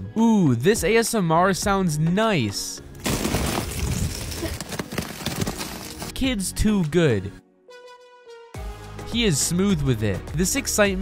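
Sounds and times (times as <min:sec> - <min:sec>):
ice cracking and crunching: 0:03.0 - 0:06.2.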